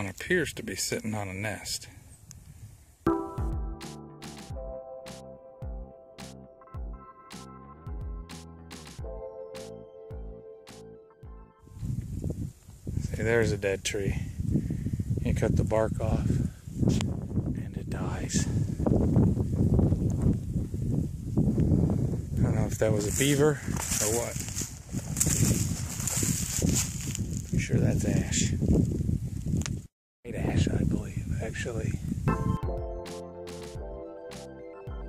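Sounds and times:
background music with beat: 0:03.1 - 0:11.6, 0:32.3 - 0:35.0
wind buffeting microphone: 0:11.7 - 0:32.3
footsteps on dry leaves: 0:23.0 - 0:27.6.

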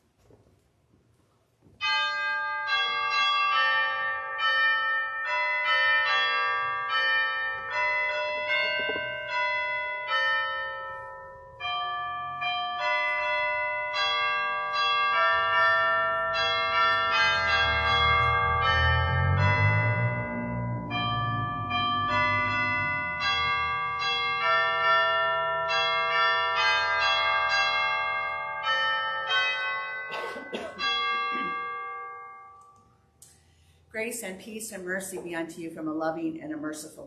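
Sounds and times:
chimes ringing: 0:01.8 - 0:33.7
low rumble: 0:18.2 - 0:23.2.

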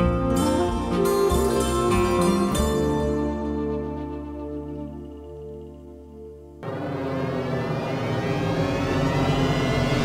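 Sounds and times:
dense whooshing drone: 0:06.6 - 0:10.0.

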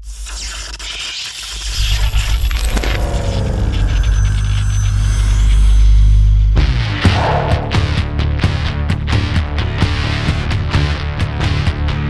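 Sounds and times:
thin high whine: 0:01.8 - 0:08.4
heavy bass rumble: 0:01.9 - 0:09.3
falling sweep: 0:07.0 - 0:08.6.

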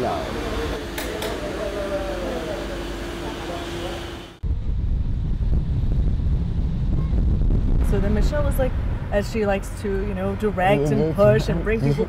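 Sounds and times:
car road noise rumble: 0:04.4 - 0:11.8.

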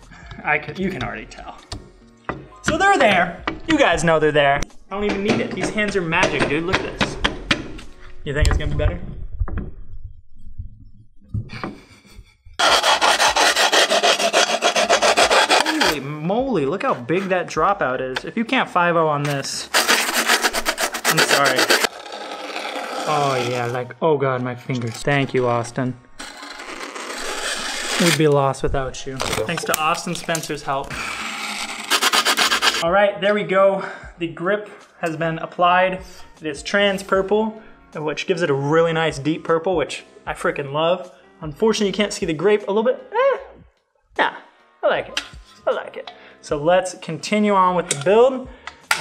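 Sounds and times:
tool scraping grip tape: 0:12.6 - 0:16.0, 0:19.2 - 0:23.8, 0:26.2 - 0:28.4, 0:29.2 - 0:32.8.

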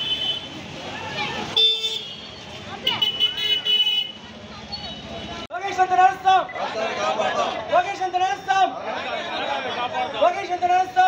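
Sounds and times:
vehicle horns honking: 0:00.0 - 0:00.6, 0:01.5 - 0:05.3
crowd voices: 0:02.2 - 0:11.0.

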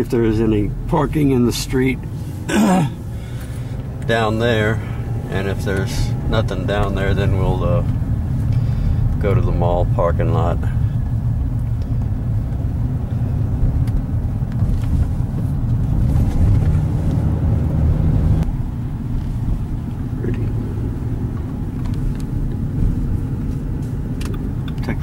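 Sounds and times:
car engine and tyres rumbling: 0:00.0 - 0:25.0.

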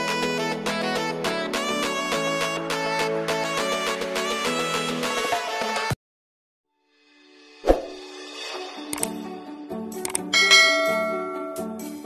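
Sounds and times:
short clicks: 0:08.9 - 0:09.2, 0:10.0 - 0:10.3
bell chime ding: 0:10.4 - 0:12.0.

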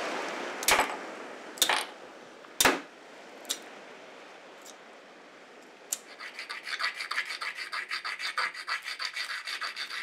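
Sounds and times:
shell rasping against stone: 0:06.0 - 0:10.0.

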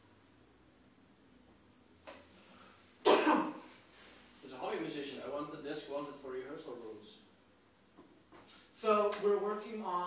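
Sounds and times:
person coughing: 0:03.0 - 0:03.7
man speaking: 0:04.4 - 0:07.3.

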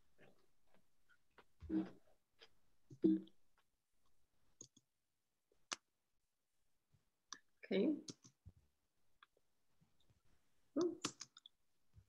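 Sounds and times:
computer mouse clicks: 0:08.1 - 0:08.4, 0:11.0 - 0:11.5.

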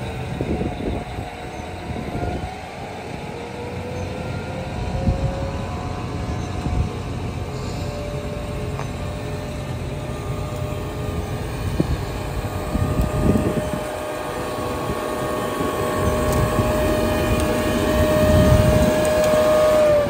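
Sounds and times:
low machinery rumble: 0:00.0 - 0:20.0
machinery high whine: 0:00.0 - 0:20.0.

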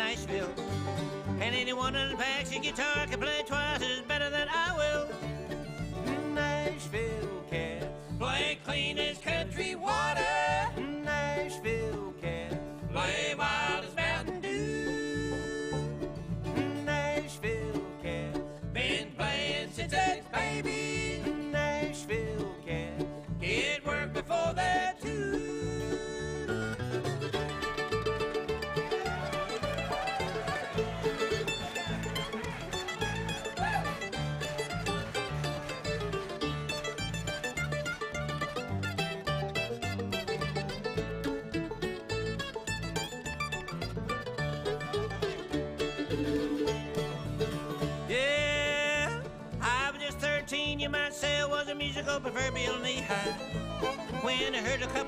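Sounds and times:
acoustic guitar: 0:00.0 - 0:55.0
mandolin lead: 0:00.0 - 0:55.0
upright bass: 0:00.0 - 0:55.0.

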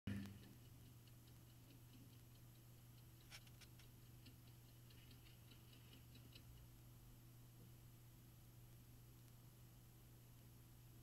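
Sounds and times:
small clock ticking: 0:00.1 - 0:07.0
steady low hum: 0:00.1 - 0:11.0.

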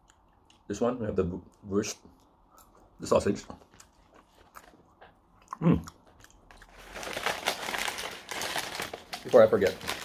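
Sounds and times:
paper bag crinkling: 0:06.7 - 0:10.0.

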